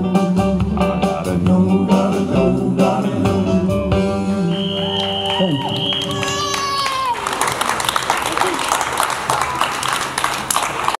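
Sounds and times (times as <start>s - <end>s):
audience clapping: 4.5s - 11.0s.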